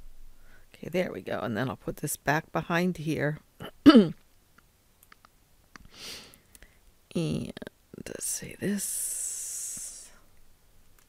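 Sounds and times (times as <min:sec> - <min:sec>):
computer mouse clicks: 0:04.6 - 0:05.9.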